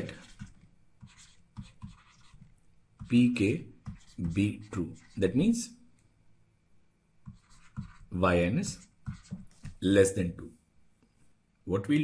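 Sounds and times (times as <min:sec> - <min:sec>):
stylus scratching on a tablet: 0:00.0 - 0:05.6, 0:07.2 - 0:09.8.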